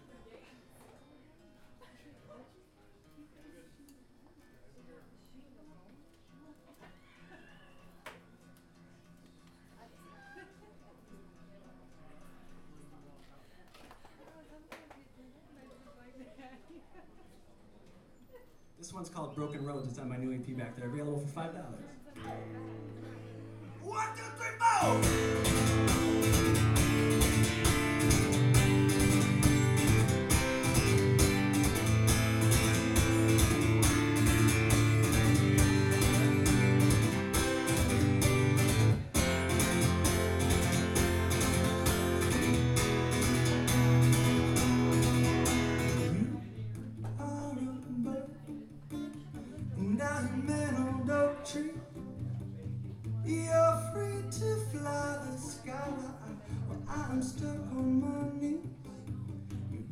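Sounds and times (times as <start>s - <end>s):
acoustic guitar strummed: 22.2s - 55.9s.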